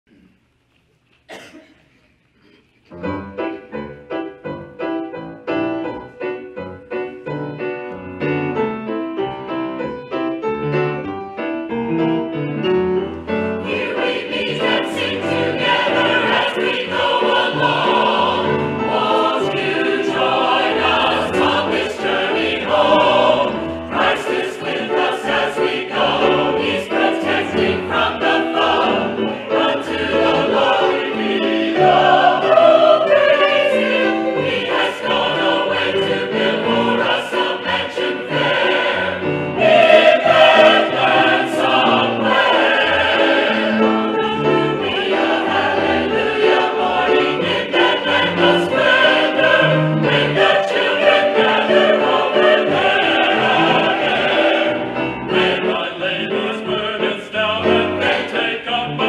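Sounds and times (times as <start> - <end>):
piano accompaniment: 2.9 - 59.0
choir singing gospel song: 13.4 - 59.0.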